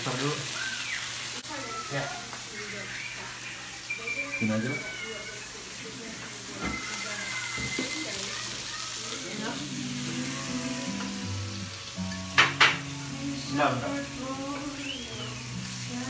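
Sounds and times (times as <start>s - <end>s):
food sizzling in hot oil: 0.0s - 16.0s.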